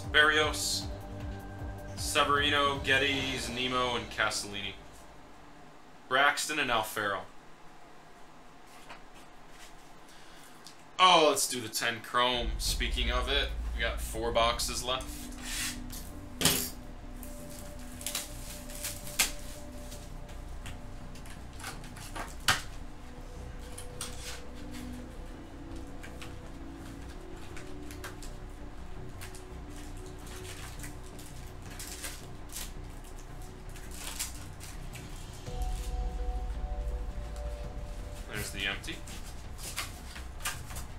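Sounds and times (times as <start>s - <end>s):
faint background music: 0.0s - 40.9s.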